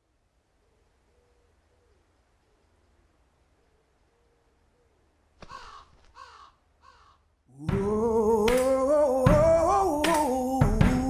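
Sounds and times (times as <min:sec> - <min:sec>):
crow cawing: 0:05.4 - 0:07.3.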